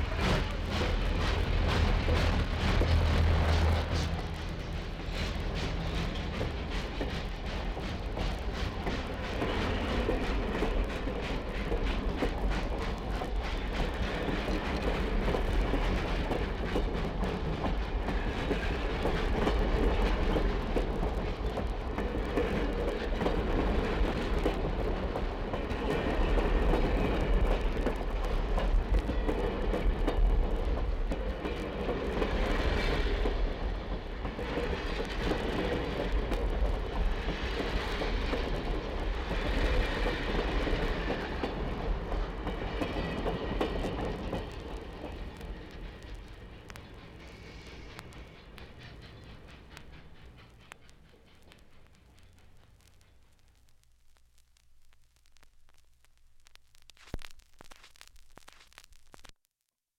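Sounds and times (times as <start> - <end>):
passenger train running on rails: 0.0 - 53.5.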